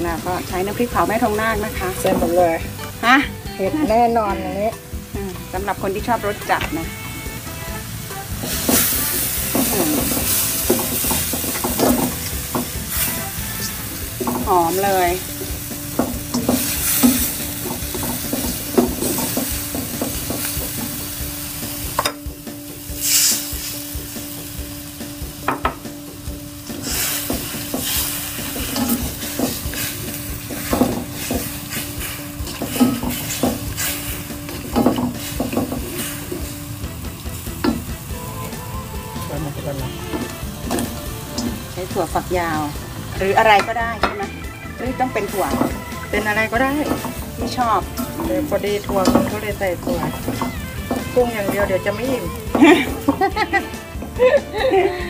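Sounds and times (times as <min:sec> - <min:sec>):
paste sizzling in a wok: 0:00.0 - 0:55.0
spatula scraping a wok: 0:04.6 - 0:54.6
water poured into hot pan: 0:07.5 - 0:22.1, 0:22.8 - 0:25.6, 0:26.6 - 0:38.2.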